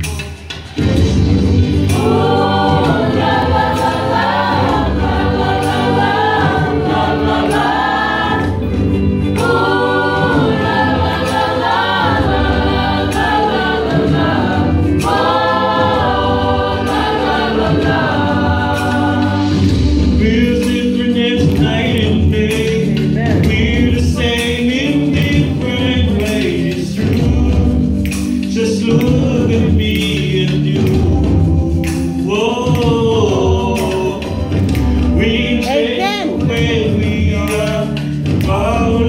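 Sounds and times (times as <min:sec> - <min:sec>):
choir singing gospel: 0:00.5 - 0:39.0.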